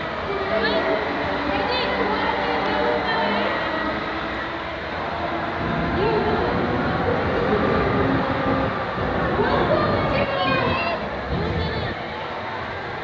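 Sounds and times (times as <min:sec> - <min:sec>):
people's voices: 0:00.0 - 0:13.0
pendulum ride mechanical rumble: 0:05.4 - 0:12.1.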